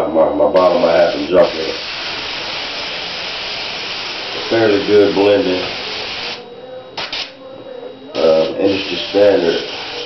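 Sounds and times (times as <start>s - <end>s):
airbrush spraying air hiss: 0.7s - 6.4s, 8.2s - 10.0s.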